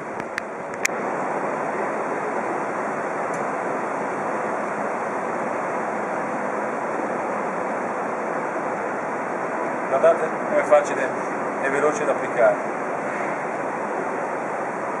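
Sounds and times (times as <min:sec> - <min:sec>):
steady rushing noise: 0:00.0 - 0:15.0.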